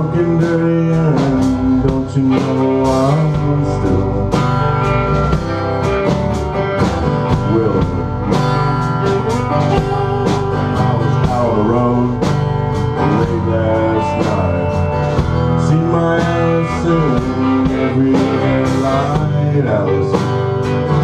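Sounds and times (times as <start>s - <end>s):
pitch-bending melody line: 0.0s - 20.2s
bass guitar: 0.0s - 21.0s
drum kit beat: 0.0s - 21.0s
electric guitar: 0.0s - 21.0s
strummed acoustic guitar: 0.0s - 21.0s.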